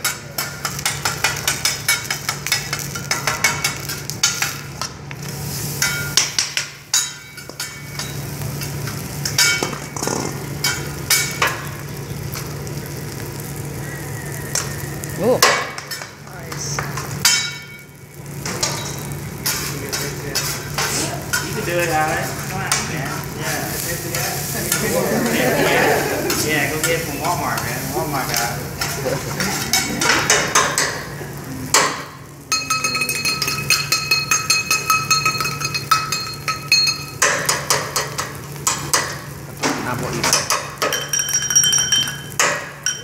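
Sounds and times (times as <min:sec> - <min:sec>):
food sizzling: 0:00.0 - 0:43.0
metal spatulas scraping griddle: 0:18.4 - 0:22.5, 0:23.4 - 0:30.6.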